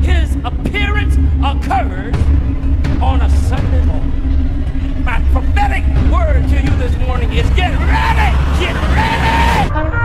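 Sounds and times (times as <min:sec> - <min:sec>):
deep low rumble: 0:00.0 - 0:09.7
held hum: 0:00.0 - 0:09.9
preacher shouting: 0:05.4 - 0:09.7.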